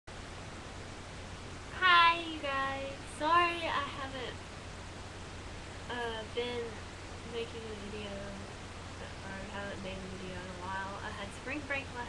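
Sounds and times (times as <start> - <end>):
steady low hum: 0.1 - 12.0
girl's sing-song voice: 1.7 - 4.4.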